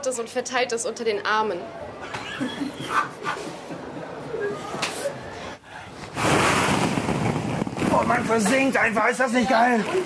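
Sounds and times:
plastic balls rustling and clattering: 6.1 - 10.0.

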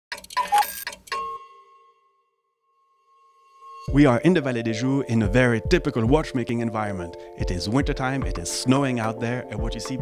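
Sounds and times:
clock-like clicks and chimes: 0.1 - 1.7
ringing bell-like tone: 0.6 - 5.2.

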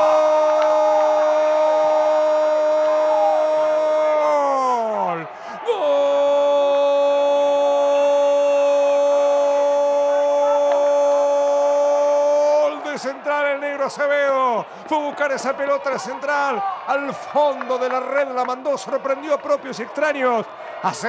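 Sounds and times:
man shouting goal cry: 0.0 - 14.4.

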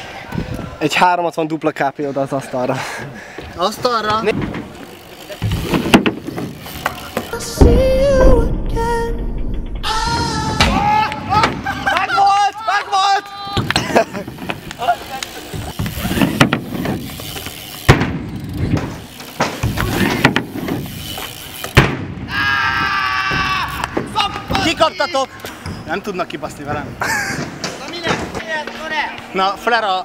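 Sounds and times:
riders talking and calling out: 1.7 - 7.5, 10.8 - 21.7, 22.3 - 30.0
bike banging on ramp: 3.8 - 11.9, 15.5 - 25.0.

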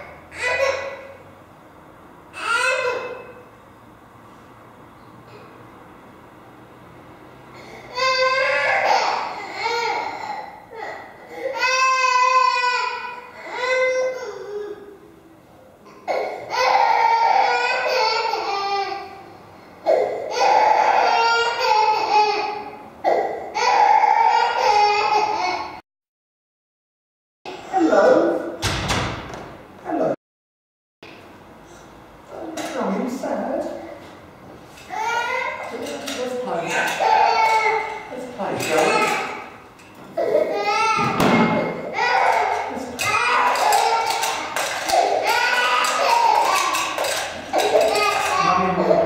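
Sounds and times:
baby crying: 7.9 - 14.9, 16.0 - 19.1, 19.8 - 25.8, 34.9 - 35.8, 36.7 - 39.5, 40.2 - 49.0
wordless voices: 35.7 - 37.3.

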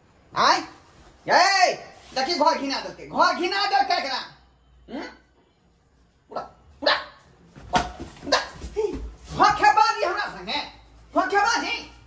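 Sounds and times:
man imitating dog barks: 4.9 - 5.3, 6.3 - 7.3.

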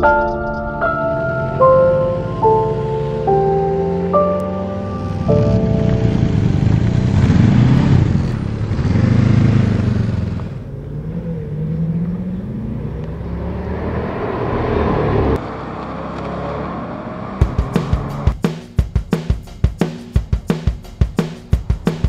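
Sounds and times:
engine pitch rising and falling: 0.0 - 18.4
vehicles passing: 0.0 - 18.4, 20.8 - 22.0
drumbeat: 17.4 - 22.0.

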